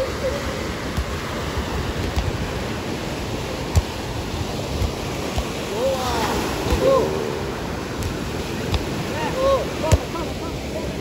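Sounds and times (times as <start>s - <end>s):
small waves washing onto beach: 0.0s - 11.0s.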